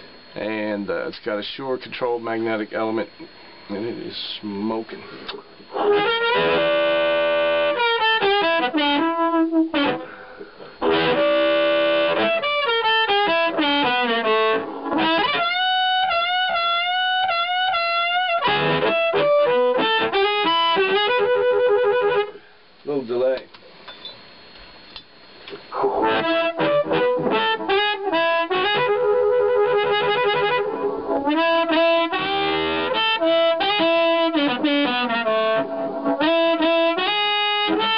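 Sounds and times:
distorted blues harmonica: 0:02.0 - 0:22.7, 0:25.5 - 0:37.9.

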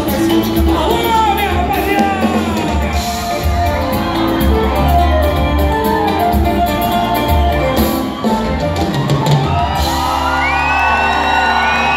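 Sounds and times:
drumming: 0:00.0 - 0:11.9
live band playing: 0:00.0 - 0:11.9
crowd shouting and whooping: 0:01.4 - 0:11.9.

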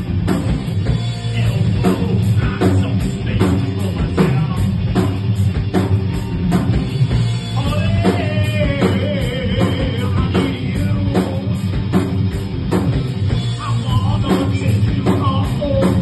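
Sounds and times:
live rock band playing: 0:00.0 - 0:16.0
man singing: 0:01.2 - 0:04.8, 0:07.5 - 0:11.6, 0:13.5 - 0:16.0.

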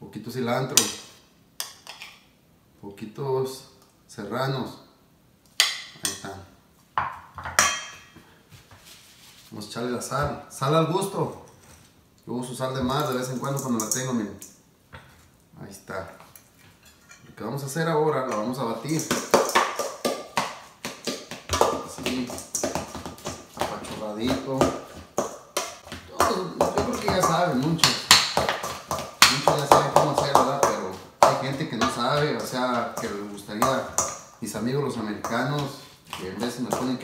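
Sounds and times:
man talking: 0:00.0 - 0:01.0, 0:02.8 - 0:04.8, 0:06.0 - 0:06.6, 0:09.5 - 0:11.5, 0:12.2 - 0:14.5, 0:15.6 - 0:16.2, 0:17.3 - 0:19.4, 0:21.6 - 0:22.7, 0:23.6 - 0:24.9, 0:26.1 - 0:28.2, 0:29.2 - 0:37.0.

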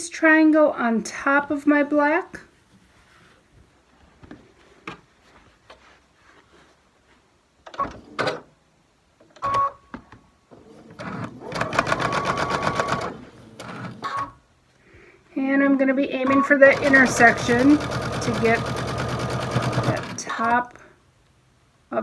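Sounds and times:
sewing machine stitching: 0:10.8 - 0:14.3, 0:16.3 - 0:20.5.

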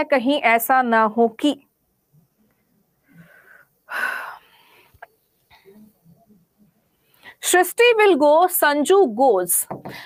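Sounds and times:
woman breathing: 0:03.0 - 0:05.8.

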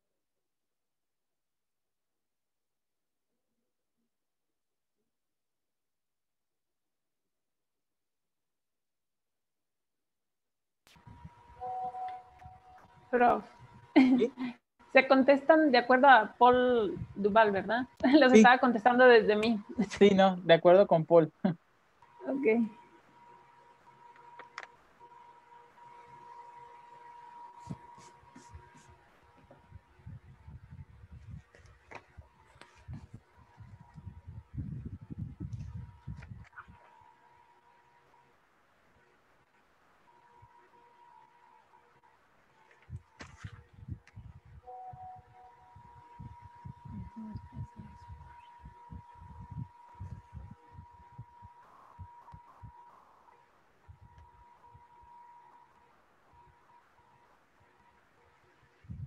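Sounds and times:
faint high-pitched tone: 0:11.0 - 0:13.6, 0:44.5 - 0:58.9
thin high-pitched tone: 0:11.6 - 0:12.9, 0:44.7 - 0:48.7
small clicks: 0:24.1 - 0:24.8.

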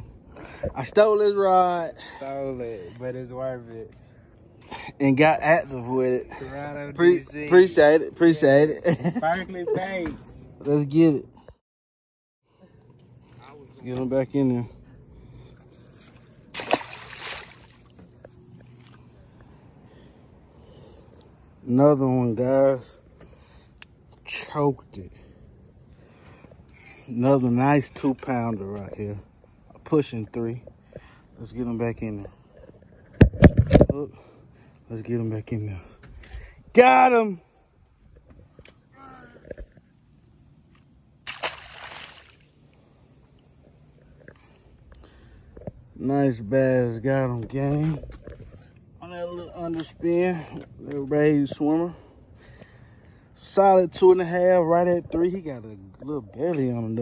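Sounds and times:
fish splashing into water: 0:16.5 - 0:18.0, 0:41.2 - 0:42.7.

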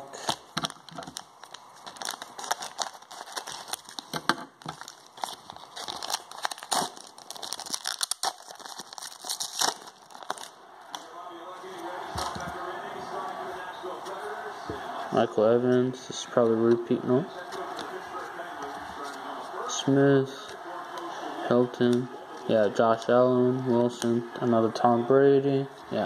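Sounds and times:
plastic wrapper crinkling and tearing: 0:00.1 - 0:11.1.

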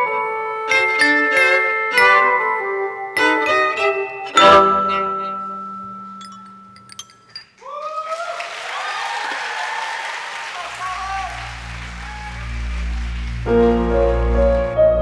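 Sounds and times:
violin piece: 0:00.6 - 0:05.4
audience applause and cheering: 0:07.6 - 0:15.0.

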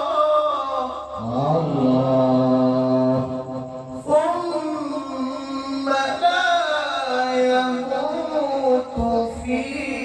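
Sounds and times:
man reciting melodically: 0:00.0 - 0:10.0.

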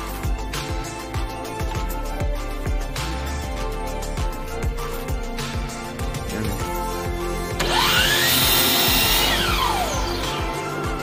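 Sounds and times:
miter saw whining and cutting wood: 0:07.5 - 0:11.0.

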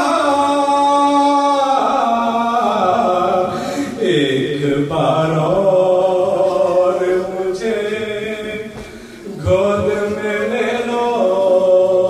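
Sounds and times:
man chanting through a microphone: 0:00.0 - 0:12.0.

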